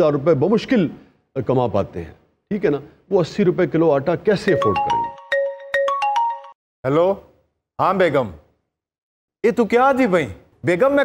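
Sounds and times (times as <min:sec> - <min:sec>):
marimba-like phone ringtone: 0:04.5 - 0:06.6.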